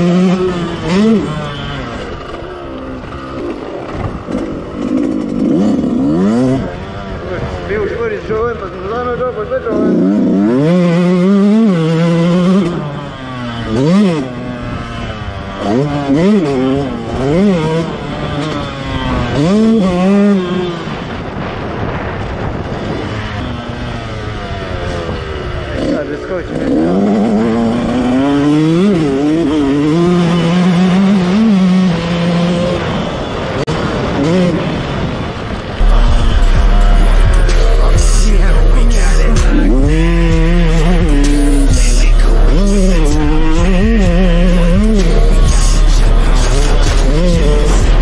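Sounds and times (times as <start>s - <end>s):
dirt bike engine revving: 0.0s - 48.0s.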